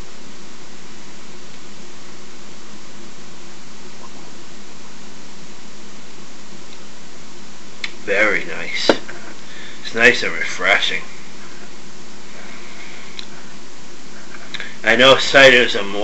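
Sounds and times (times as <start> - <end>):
room noise hiss: 0.0 - 16.0.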